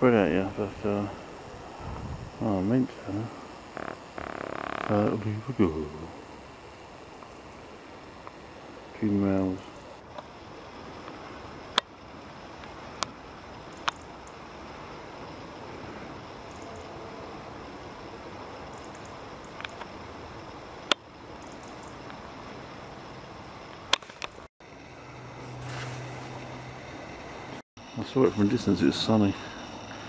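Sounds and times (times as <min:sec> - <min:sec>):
low steady hum: 0:00.0 - 0:21.4.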